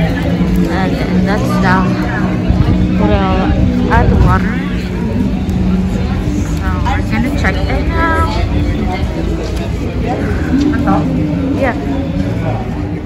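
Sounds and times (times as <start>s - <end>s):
indistinct voices talking: 0.0s - 13.0s
low hum and rumble: 0.4s - 13.0s.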